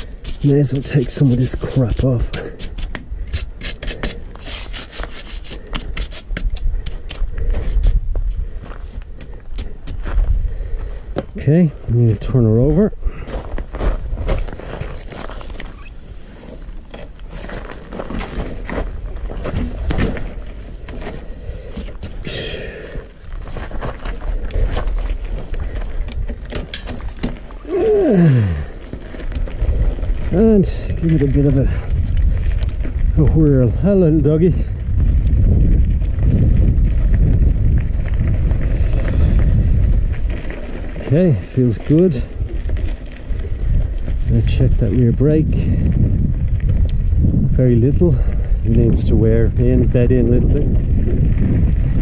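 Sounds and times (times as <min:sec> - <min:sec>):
bike knocks and rattles on gravel: 0:00.0 - 0:52.0
wind buffeting microphone: 0:00.0 - 0:52.0.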